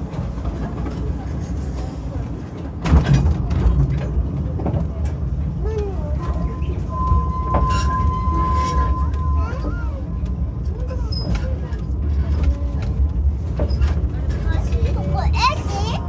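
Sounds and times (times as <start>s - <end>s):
clicks and knocks from track: 0.0s - 6.6s
train rumble: 0.0s - 16.0s
faint voices: 0.1s - 16.0s.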